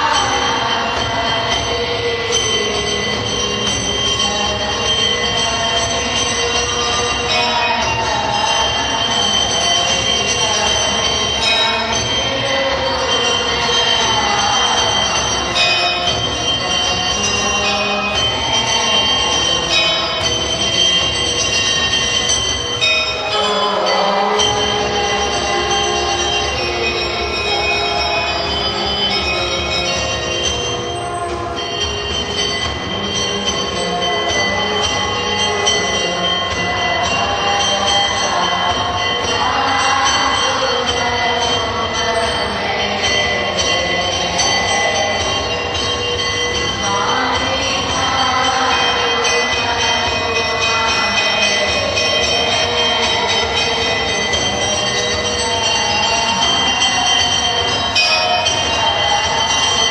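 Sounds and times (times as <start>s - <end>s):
temple bells ringing: 0.0s - 59.9s.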